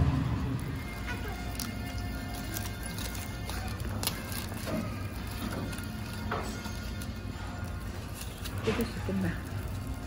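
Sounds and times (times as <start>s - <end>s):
background music: 0.0s - 10.0s
aluminium foil crinkling: 0.6s - 10.0s.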